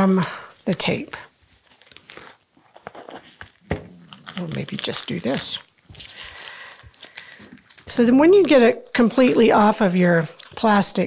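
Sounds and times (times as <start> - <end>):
plastic sheet and tape crinkling: 0.6 - 11.0.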